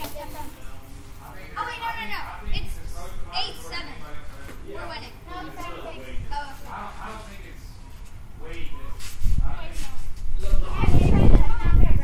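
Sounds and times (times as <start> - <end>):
boys calling out: 1.6 - 4.0.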